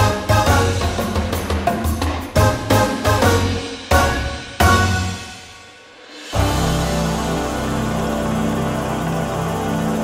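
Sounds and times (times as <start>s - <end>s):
music with sustained chords: 2.4s - 10.0s.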